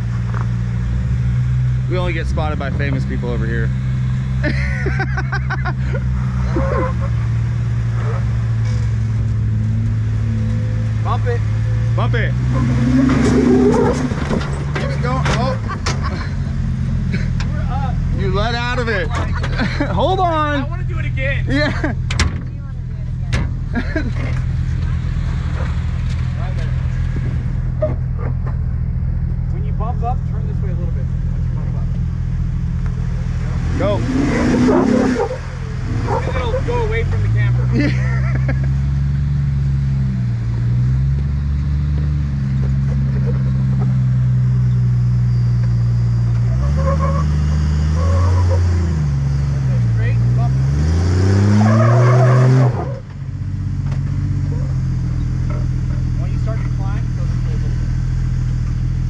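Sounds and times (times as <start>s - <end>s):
off-road vehicle engine revving: 0.0s - 59.0s.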